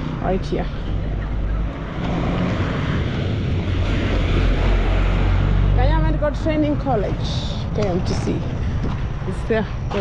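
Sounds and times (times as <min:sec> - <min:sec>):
bus engine passing: 0:00.0 - 0:10.0
traffic noise: 0:00.0 - 0:10.0
wind: 0:00.0 - 0:10.0.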